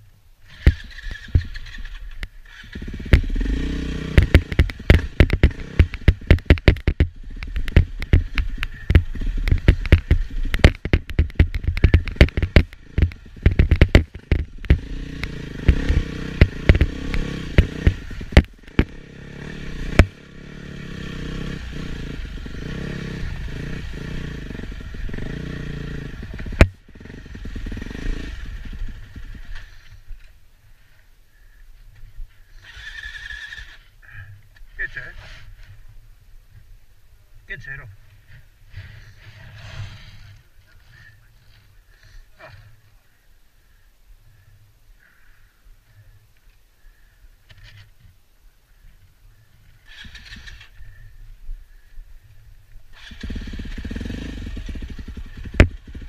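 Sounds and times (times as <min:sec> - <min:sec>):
motorcycle engine running: 0:00.4 - 0:36.0, 0:49.4 - 0:56.0
knocks and clatter over rocks: 0:04.2 - 0:14.9.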